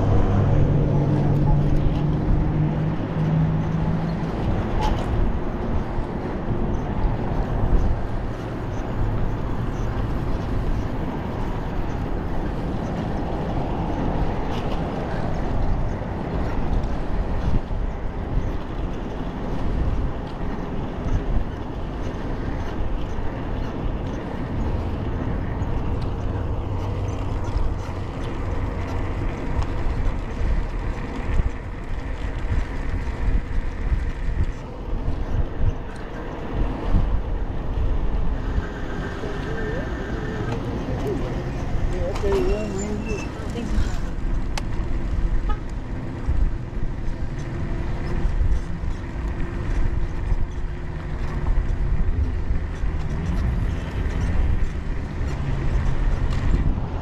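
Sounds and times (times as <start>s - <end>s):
road traffic passing: 0.0s - 57.0s
wind rushing over microphone: 0.0s - 57.0s.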